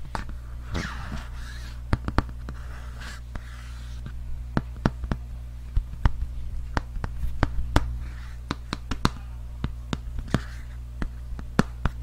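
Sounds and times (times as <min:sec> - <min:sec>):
fingers tapping on book cover: 0:00.0 - 0:02.6, 0:03.3 - 0:05.2, 0:05.8 - 0:12.0
low hum: 0:00.0 - 0:12.0.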